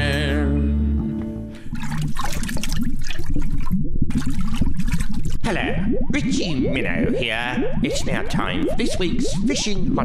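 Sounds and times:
music: 0:00.0 - 0:01.7
bubbling underwater sound effect: 0:01.7 - 0:10.0.

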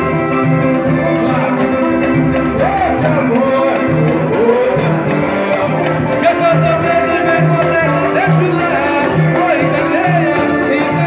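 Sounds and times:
low beat: 0:00.0 - 0:11.0
person singing: 0:00.0 - 0:11.0
samba music: 0:00.0 - 0:11.0
strummed guitars: 0:00.0 - 0:11.0.

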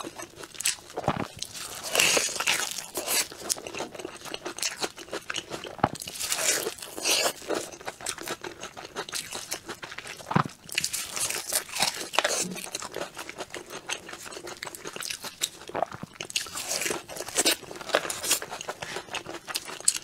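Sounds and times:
crunchy chewing of cake: 0:00.0 - 0:20.0.

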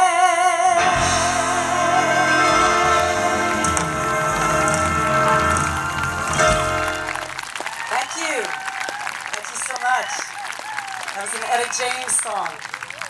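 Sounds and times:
live band holding chord: 0:00.6 - 0:07.6
audience applause: 0:01.0 - 0:13.0
audience shouting: 0:01.4 - 0:11.6.

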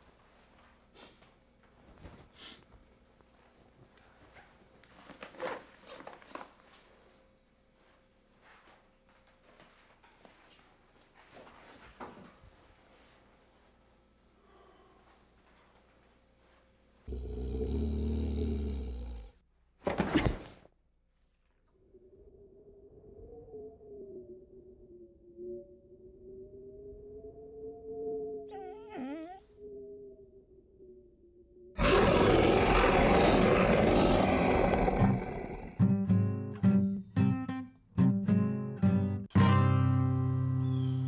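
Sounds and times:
low deep animal growl: 0:17.1 - 0:19.4, 0:31.8 - 0:35.8
rough beast roar: 0:17.1 - 0:19.4, 0:31.8 - 0:35.8
strummed acoustic guitar chords: 0:35.8 - 0:40.5.

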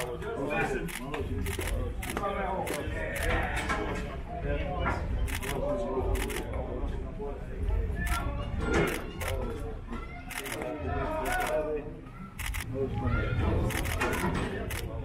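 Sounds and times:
people talking and calling out: 0:00.0 - 0:15.0.

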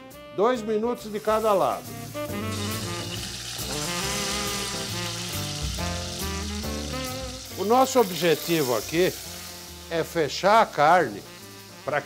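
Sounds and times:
background music with brass: 0:00.0 - 0:12.0
beef sizzling in a pot: 0:01.1 - 0:12.0.

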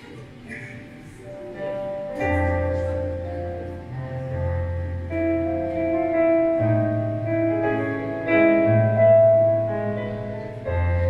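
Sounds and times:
electronic keyboard chords: 0:00.0 - 0:11.0.

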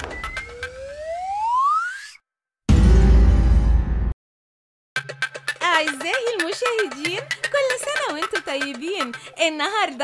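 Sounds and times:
rising whistle-like tone: 0:00.0 - 0:02.2
short woodblock-like clicks: 0:05.0 - 0:10.0.

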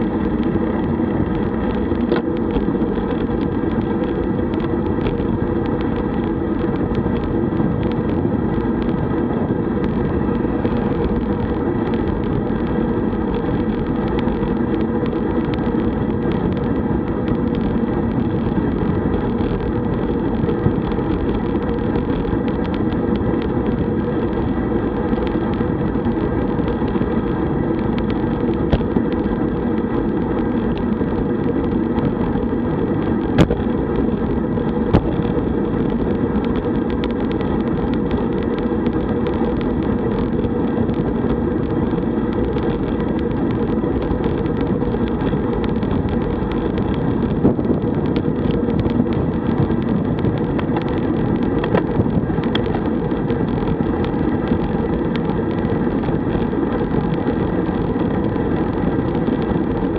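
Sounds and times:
bicycle tyres on asphalt: 0:00.0 - 0:59.9
wind on microphone: 0:00.0 - 0:59.9.

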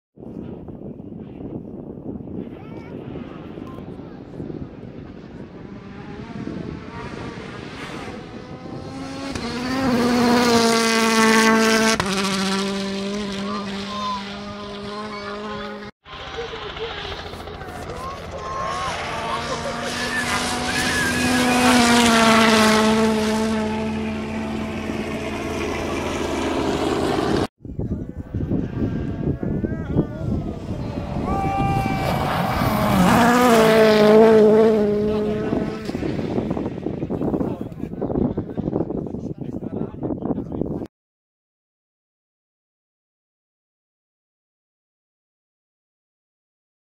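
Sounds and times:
rally car engines passing: 0:03.0 - 0:27.5, 0:28.1 - 0:38.9.

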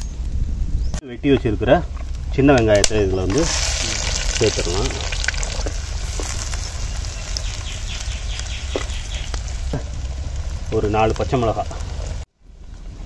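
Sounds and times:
shallots sizzling in hot oil: 0:03.2 - 0:12.2.

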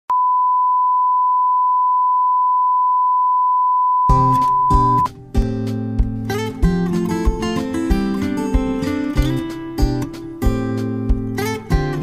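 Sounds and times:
steady electronic beep: 0:00.1 - 0:05.1.

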